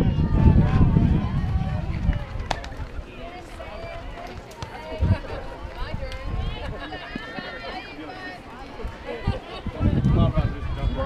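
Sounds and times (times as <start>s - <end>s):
wind rumble on microphone: 0.0s - 7.0s, 8.8s - 11.0s
people calling out and chattering: 0.0s - 11.0s.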